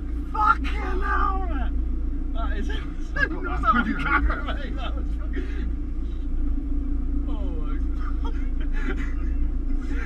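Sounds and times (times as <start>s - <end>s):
car engine and road rumble: 0.0s - 10.0s
voices inside car: 0.0s - 10.0s.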